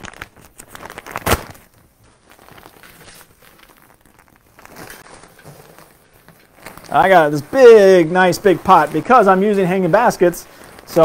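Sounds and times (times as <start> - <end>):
soil bag crinkling and rustling: 0.0 - 11.0
soil pouring into a pot: 2.1 - 11.0.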